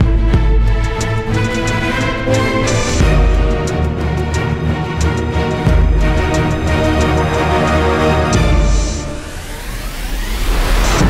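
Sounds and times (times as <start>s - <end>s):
low bass hum: 0.0s - 9.7s
rising white-noise sweep: 8.3s - 11.0s.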